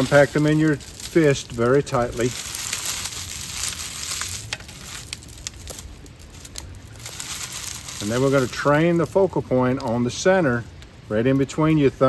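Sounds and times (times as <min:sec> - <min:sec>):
dry leaves crunching: 0:00.0 - 0:10.3.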